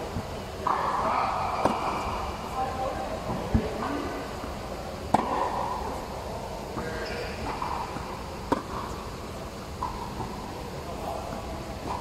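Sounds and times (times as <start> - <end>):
tennis racket hitting balls: 0.2 - 2.3, 5.1 - 5.9, 6.7 - 10.5.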